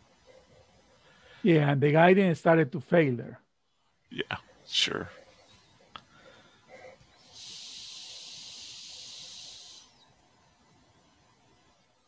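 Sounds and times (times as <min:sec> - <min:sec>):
steady hiss: 0:05.9 - 0:12.0.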